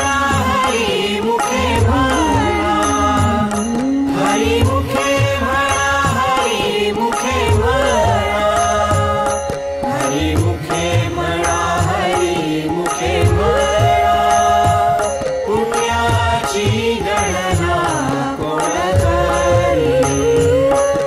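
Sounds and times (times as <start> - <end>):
low percussion rhythm: 0.0 - 21.0.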